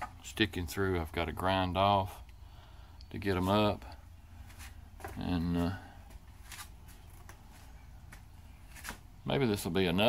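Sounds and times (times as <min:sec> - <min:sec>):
low steady room rumble: 0:00.0 - 0:10.0
faint rustling: 0:03.2 - 0:09.2.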